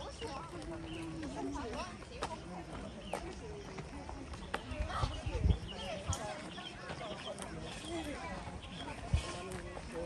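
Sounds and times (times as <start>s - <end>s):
faint chatter of people: 0.0s - 10.0s
footfalls on paved path: 0.0s - 10.0s.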